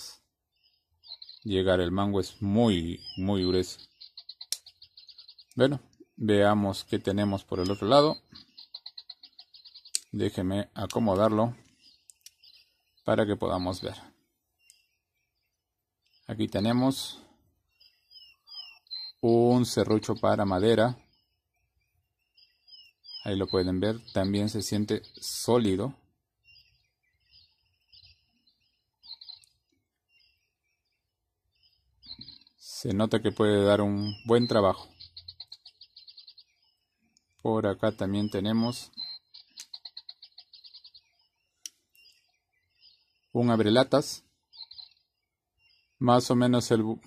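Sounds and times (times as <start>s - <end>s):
faint bird chirps: 0.0s - 47.0s.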